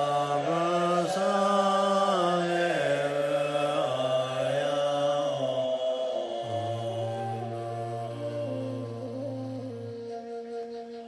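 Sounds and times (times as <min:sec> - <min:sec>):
man chanting in held tones: 0:00.0 - 0:09.6.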